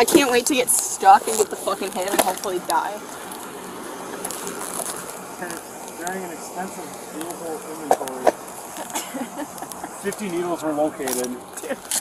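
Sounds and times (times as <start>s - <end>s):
faint voices talking: 0.0s - 12.0s
steady outdoor hiss: 0.0s - 12.0s.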